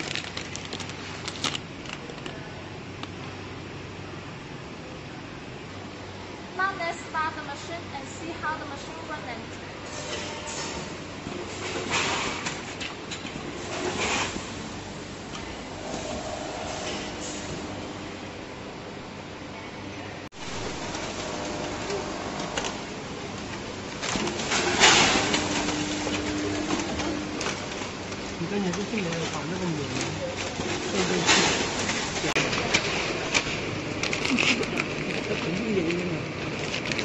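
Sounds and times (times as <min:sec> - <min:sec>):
packing machine humming: 0:00.0 - 0:06.8, 0:08.4 - 0:19.4, 0:20.3 - 0:37.0.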